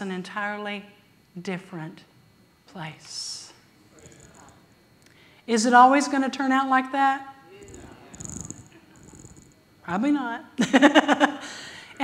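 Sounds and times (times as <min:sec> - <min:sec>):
person speaking: 0:07.6 - 0:09.5.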